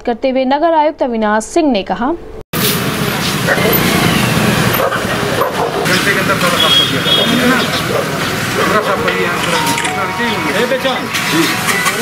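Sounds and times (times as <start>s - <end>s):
street noise: 2.3s - 12.0s
indistinct voices: 3.2s - 12.0s.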